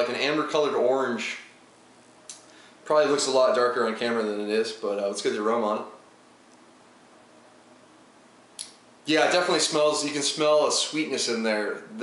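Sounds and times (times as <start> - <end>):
sharp intake of breath: 2.4 - 2.8.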